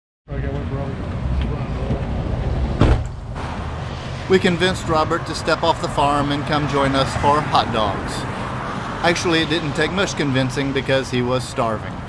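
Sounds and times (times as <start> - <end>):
loud rush of passing vehicle: 0.3 - 12.0
low rumble of traffic: 0.3 - 12.0
faint men's voices: 4.3 - 12.0.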